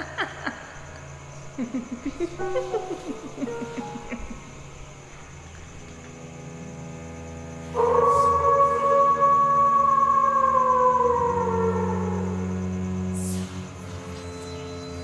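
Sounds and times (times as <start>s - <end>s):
low drone: 0.0s - 15.0s.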